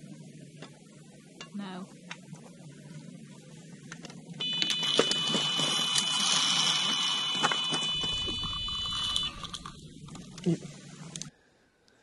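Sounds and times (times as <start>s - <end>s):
high-pitched alarm tone: 4.4s - 9.9s.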